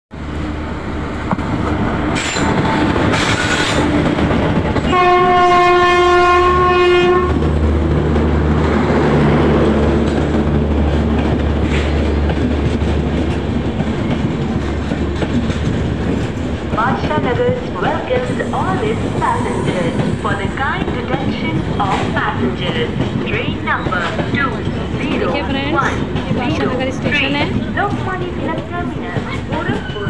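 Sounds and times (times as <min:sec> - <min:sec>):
train wheel and rail noise: 0:00.1 - 0:30.0
locomotive horn: 0:04.9 - 0:07.4.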